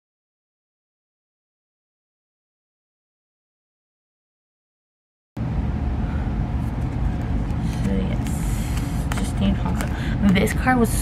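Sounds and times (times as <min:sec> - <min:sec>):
low background rumble: 0:05.4 - 0:11.0
plastic sleeves rustling and clicking: 0:06.6 - 0:11.0.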